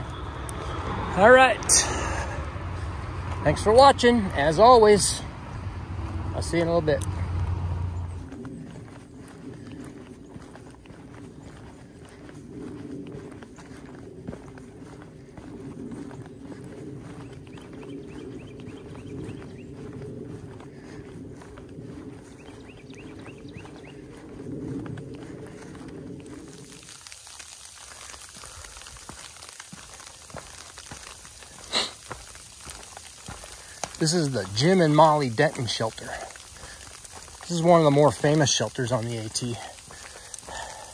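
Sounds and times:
steady low hum: 0.0 - 26.6
footsteps on leaves: 0.0 - 40.9
hiss: 26.5 - 34.0, 38.4 - 40.9.

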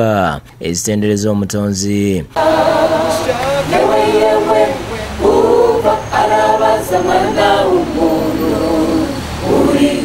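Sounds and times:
choir singing in harmony: 2.3 - 10.0.

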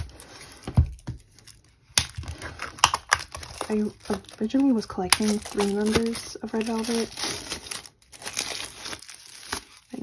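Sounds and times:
plastic rustling: 0.0 - 10.0.

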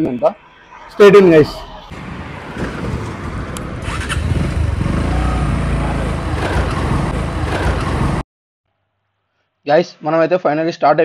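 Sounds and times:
motorcycle engine running: 3.8 - 8.2.

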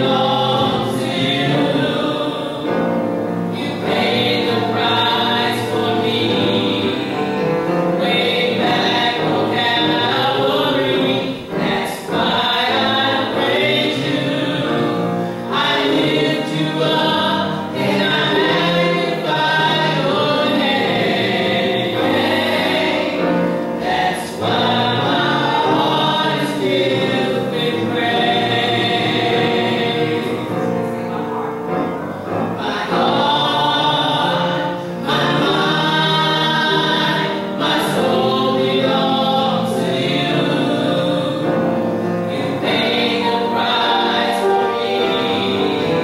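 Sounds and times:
gospel vocal group singing: 0.0 - 46.0.

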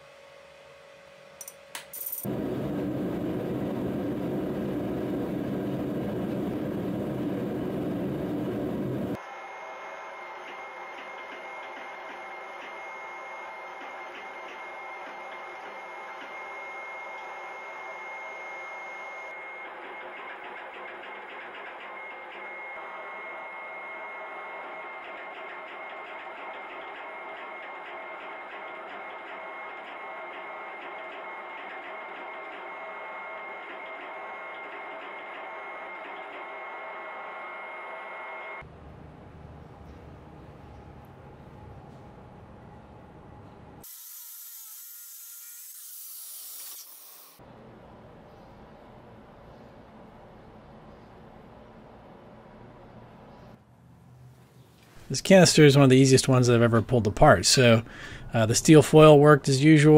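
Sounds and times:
gas forge roaring: 2.3 - 9.2
hydraulic press whining and ticking: 10.0 - 18.4.

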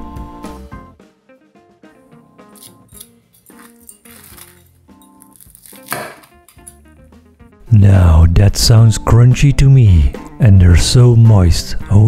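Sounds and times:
soft plucked background music: 0.0 - 12.0
knife crunching through crispy crust: 2.5 - 6.8.

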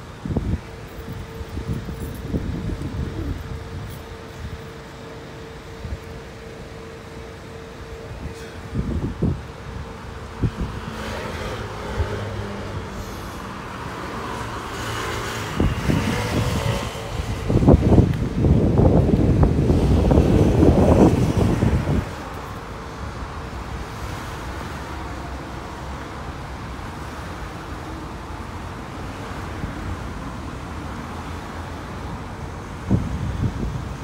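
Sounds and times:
bus engine passing close: 0.0 - 34.0
road traffic hum: 0.0 - 34.0.

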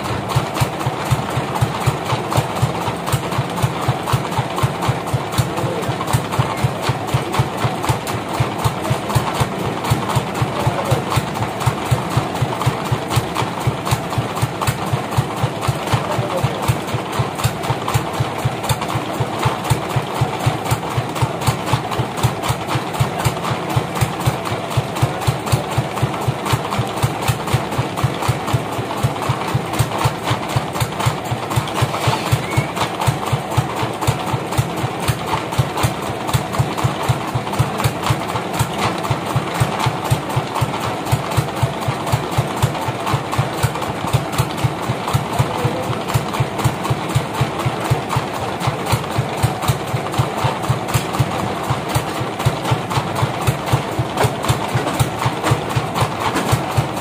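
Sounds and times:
sawmill engine thudding: 0.0 - 57.0.

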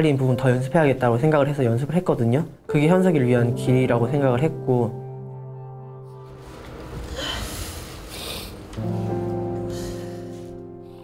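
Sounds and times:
background music: 0.0 - 7.8, 8.4 - 11.0.

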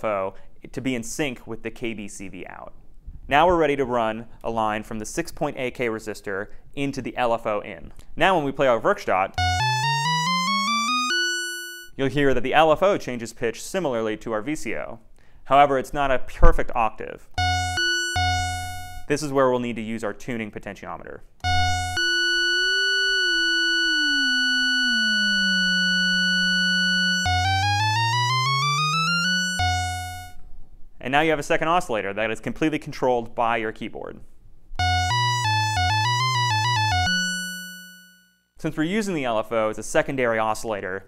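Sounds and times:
lower tone gliding down: 9.4 - 11.7, 17.4 - 19.1, 21.4 - 30.4, 34.8 - 37.8
buzzy tone sweeping upward: 9.4 - 11.9, 17.4 - 19.1, 21.4 - 30.4, 34.8 - 38.0
synthesizer rising run of notes: 9.4 - 11.9, 17.4 - 19.1, 21.4 - 30.4, 34.8 - 37.9.

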